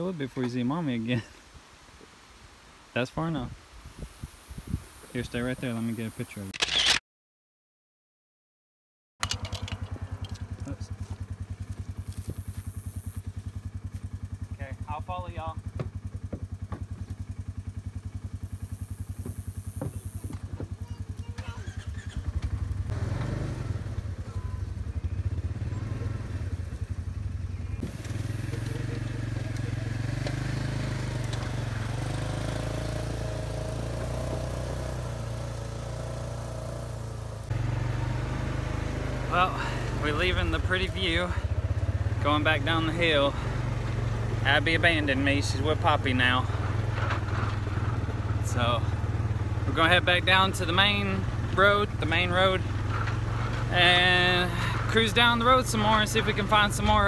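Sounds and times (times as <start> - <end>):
vehicle engines idling: 9.2 - 57.0.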